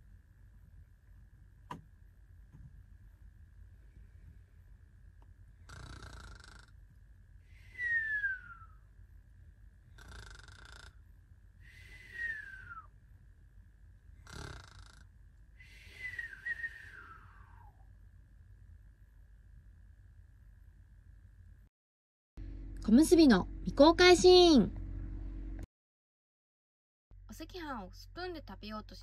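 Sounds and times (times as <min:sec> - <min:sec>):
cartoon snoring with whistle: 0:05.6 - 0:06.7, 0:07.6 - 0:08.8, 0:09.9 - 0:11.0, 0:11.7 - 0:12.9, 0:14.2 - 0:17.8
faint steady high tone: 0:07.4 - 0:09.9, 0:11.6 - 0:14.0, 0:15.6 - 0:21.5.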